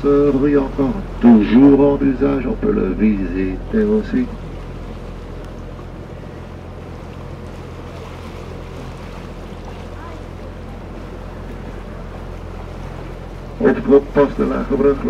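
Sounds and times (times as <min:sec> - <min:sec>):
boat motor humming: 0:00.0 - 0:15.0
water washing along hull: 0:00.0 - 0:15.0.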